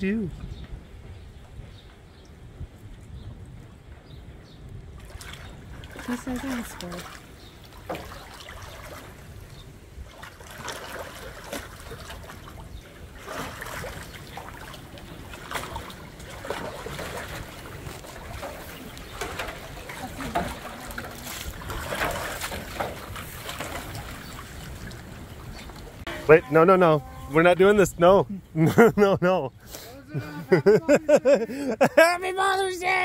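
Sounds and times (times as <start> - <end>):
water sloshing in metal tank: 5.0 - 26.1.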